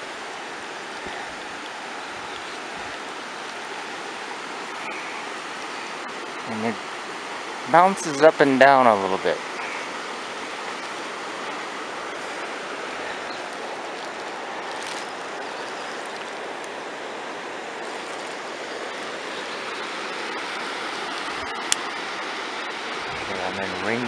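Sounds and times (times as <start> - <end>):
river rushing over rocks: 0.0 - 24.0.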